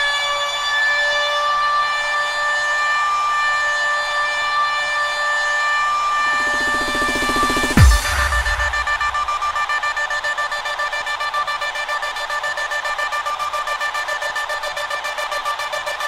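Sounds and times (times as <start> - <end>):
pulsing high synth chord: 6.1 - 9.7
low boom: 6.2 - 9.7.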